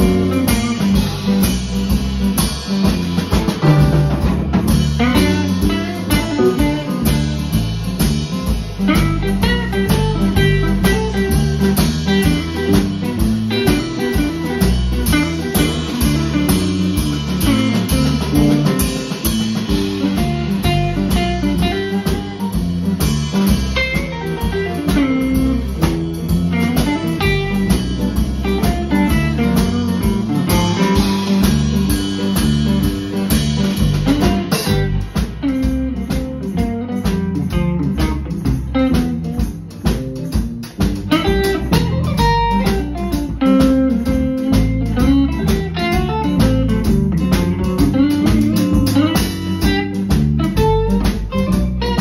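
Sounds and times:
drum kit beats: 0.0s - 52.0s
electric bass: 0.0s - 52.0s
electric guitars: 0.0s - 52.0s.

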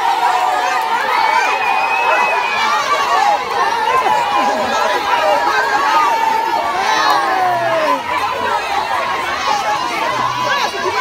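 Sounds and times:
crowd shouting and chattering: 0.0s - 11.0s.

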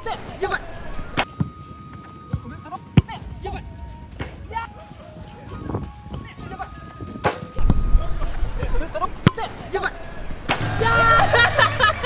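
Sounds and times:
people shouting: 7.9s - 12.0s.

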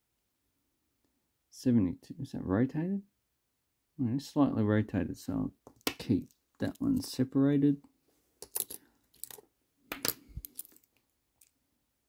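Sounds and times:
coins clinking: 8.4s - 10.9s.

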